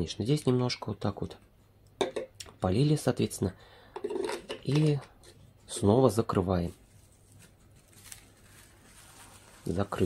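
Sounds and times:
soft plastic crinkles: 5.3 - 10.0
plastic cling film rustling: 5.7 - 10.0.

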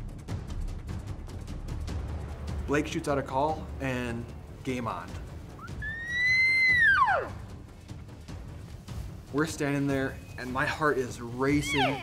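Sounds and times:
elk call whistle: 5.6 - 7.4.

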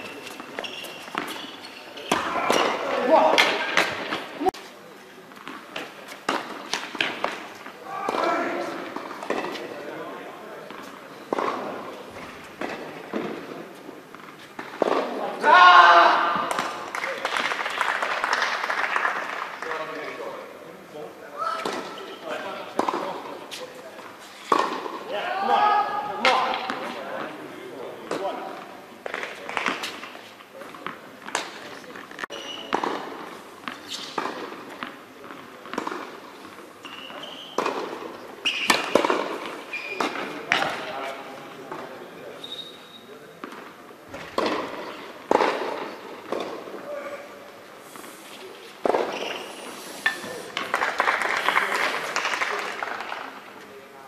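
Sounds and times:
tennis balls struck by racquets: 0.0 - 4.3, 5.4 - 9.7, 10.6 - 15.3, 16.1 - 17.6, 21.6 - 23.4, 24.5 - 25.0, 30.8 - 36.7, 37.5 - 41.0, 43.4 - 46.8, 48.8 - 49.3
tennis balls bouncing on court: 0.0 - 4.5, 5.3 - 9.7, 10.6 - 15.2, 16.2 - 19.3, 22.7 - 23.4, 24.5 - 25.0, 28.0 - 41.0, 43.4 - 46.8, 48.8 - 49.4.

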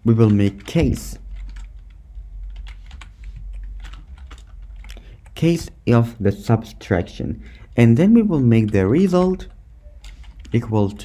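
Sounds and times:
faint low hum: 0.0 - 11.0
typing on computer keyboard: 0.2 - 5.4, 8.5 - 10.6.

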